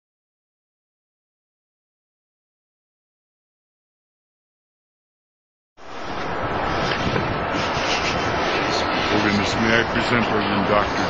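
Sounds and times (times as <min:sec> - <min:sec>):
loud steady noise: 0:05.8 - 0:11.0.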